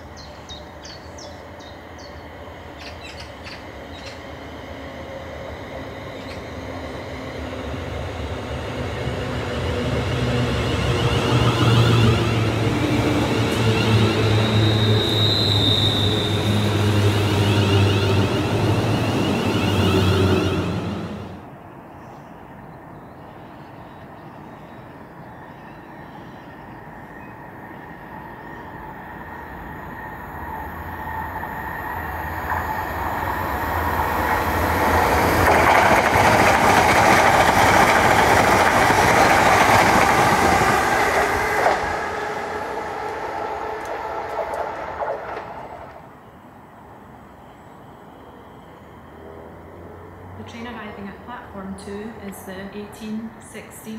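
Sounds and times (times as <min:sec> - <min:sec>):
electric train passing: 0:00.0 - 0:53.9
electric train motor whine: 0:40.7 - 0:46.1.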